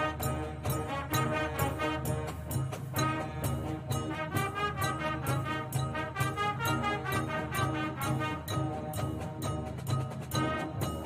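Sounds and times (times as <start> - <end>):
brass melody: 0.0 - 11.0
steady drum beat: 0.0 - 11.0.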